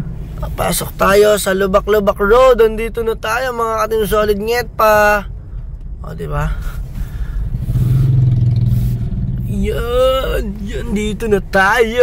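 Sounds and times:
car engine and road rumble: 0:00.0 - 0:12.0
man talking: 0:00.4 - 0:05.3, 0:06.0 - 0:06.8, 0:09.5 - 0:12.0.

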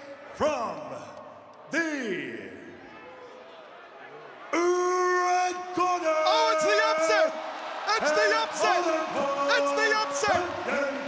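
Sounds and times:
announcer shouting over pa: 0:04.6 - 0:07.3, 0:07.9 - 0:11.0
crowd cheering and whooping: 0:06.0 - 0:11.0.

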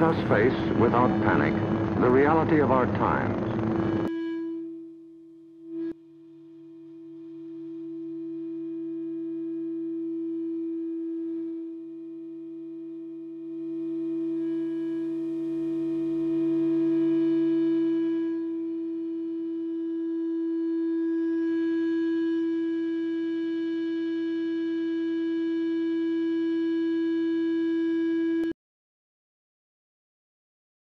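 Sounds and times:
warning siren: 0:00.0 - 0:05.0, 0:07.0 - 0:28.5.

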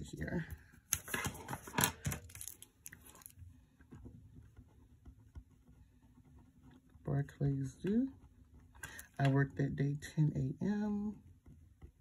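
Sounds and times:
paper rustling: 0:00.8 - 0:03.4.

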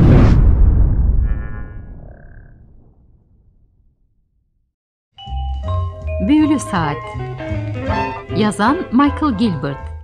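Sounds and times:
deep rumble: 0:00.0 - 0:04.5.

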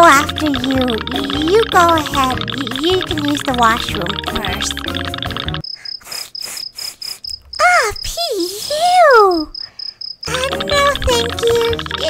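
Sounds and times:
music: 0:00.0 - 0:05.6, 0:10.3 - 0:12.0
cricket chirping sound effect: 0:00.3 - 0:08.1, 0:09.5 - 0:12.0.

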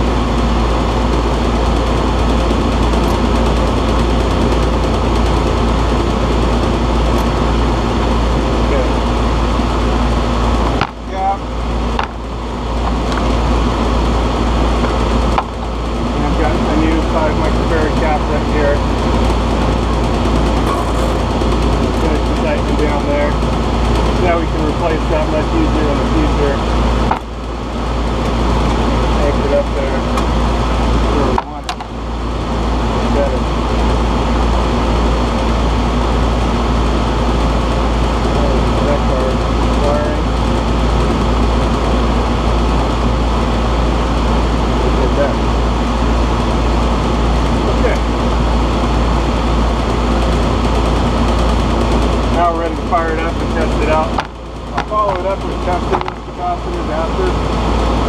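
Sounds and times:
air conditioner fan motor hum: 0:00.0 - 0:58.0.

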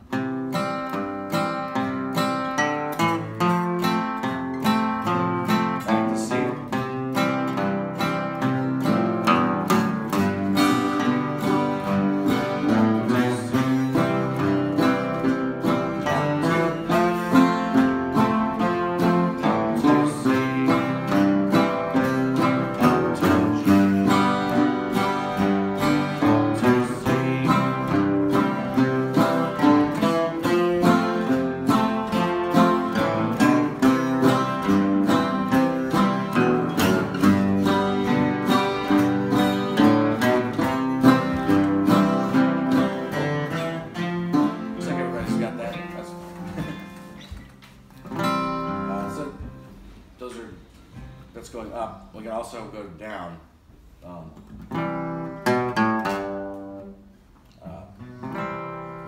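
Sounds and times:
acoustic guitar strumming: 0:00.0 - 0:52.4, 0:53.8 - 0:59.0.

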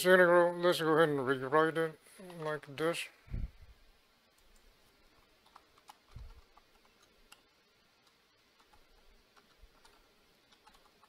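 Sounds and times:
faint keyboard typing: 0:02.2 - 0:02.9, 0:04.3 - 0:11.0.

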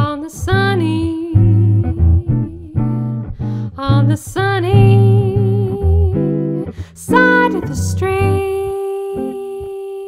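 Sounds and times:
jazz guitar chords: 0:00.0 - 0:10.0.

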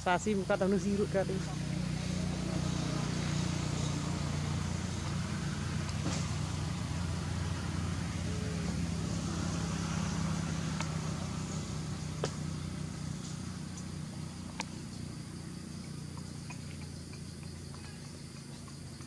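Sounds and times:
engine idling: 0:00.0 - 0:19.0.

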